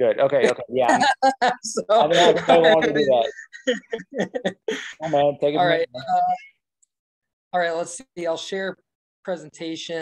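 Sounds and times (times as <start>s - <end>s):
man's voice over video call: 0.0s - 6.1s.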